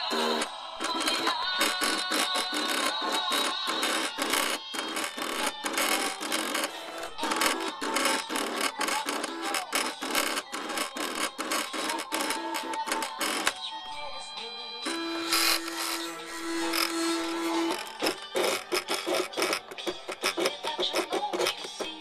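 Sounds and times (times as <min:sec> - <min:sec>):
cutting machine motors whirring: 0:00.0 - 0:22.0.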